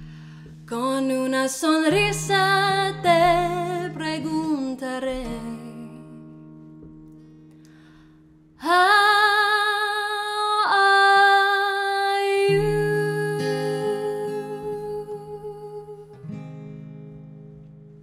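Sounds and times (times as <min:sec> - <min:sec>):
acoustic guitar strumming: 0:00.0 - 0:08.7, 0:12.5 - 0:18.0
woman singing with vibrato: 0:00.7 - 0:06.4, 0:08.6 - 0:16.2.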